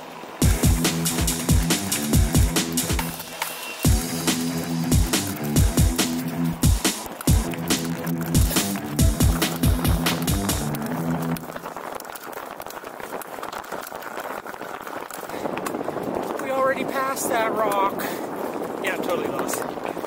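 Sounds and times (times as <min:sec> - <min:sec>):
bike tyre noise on dirt: 0:00.0 - 0:20.0
electronic dance music: 0:00.4 - 0:11.5
wind on microphone: 0:14.4 - 0:20.0.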